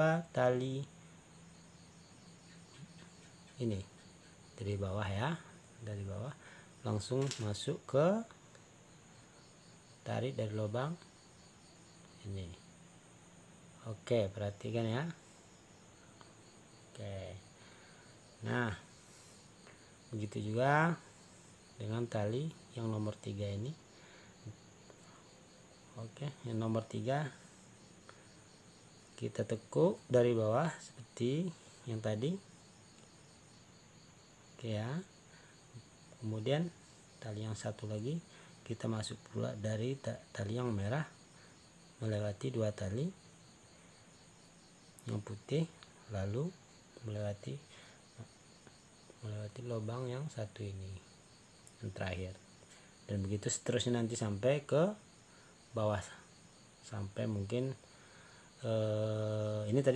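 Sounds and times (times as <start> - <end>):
crickets trilling: 0.0 - 59.9.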